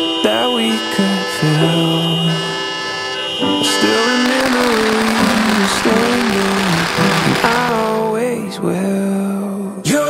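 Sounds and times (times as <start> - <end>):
song with sung melody: 0.0 - 10.0
firecrackers crackling: 0.2 - 8.4.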